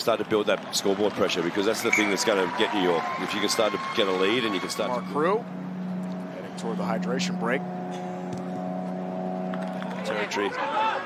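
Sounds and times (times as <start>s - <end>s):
low motor hum: 3.7s - 10.6s.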